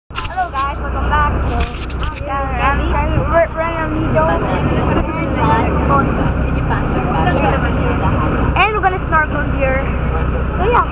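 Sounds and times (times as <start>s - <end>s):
boat engine droning: 0.1s - 10.9s
person talking: 0.2s - 9.9s.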